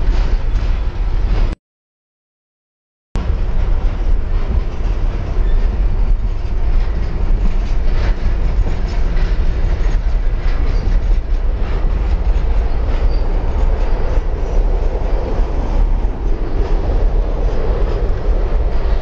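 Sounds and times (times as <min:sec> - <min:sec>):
freight train rumbling past: 0:00.0 - 0:01.6, 0:03.2 - 0:19.0
wheels clicking on rails: 0:03.2 - 0:19.0.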